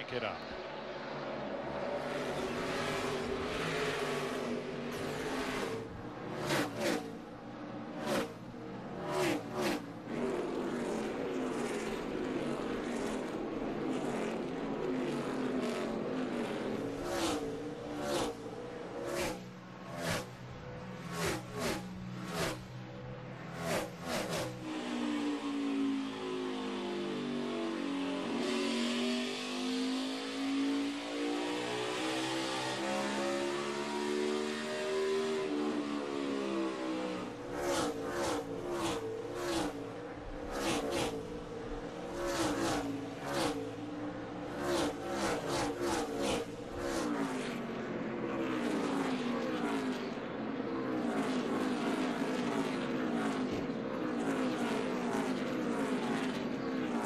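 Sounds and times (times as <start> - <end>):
race cars passing: 0.0 - 57.0.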